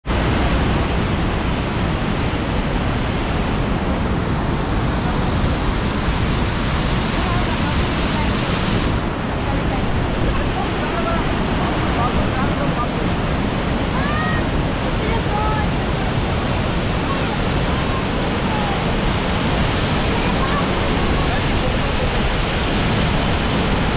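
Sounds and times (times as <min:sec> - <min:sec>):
waterfall cascading over rocks: 0:00.1 - 0:23.9.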